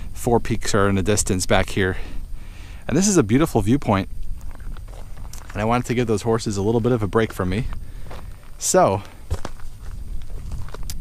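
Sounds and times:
steady low rumble: 0.0 - 11.0
footsteps on stony ground: 4.2 - 11.0.

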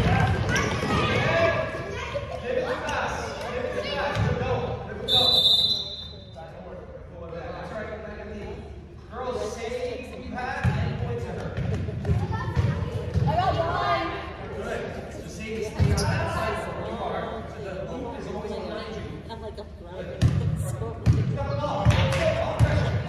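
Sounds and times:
referee's whistle: 5.0 - 6.3
basketball bouncing on gym floor: 10.6 - 13.5, 20.2 - 23.0.

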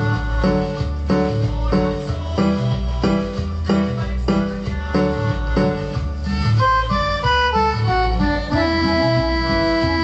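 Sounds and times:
bass and rhythm accompaniment: 0.0 - 10.0
synthesizer lead melody: 0.0 - 10.0.

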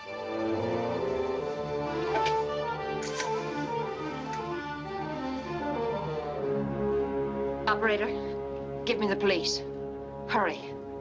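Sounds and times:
orchestral film music: 0.0 - 11.0.

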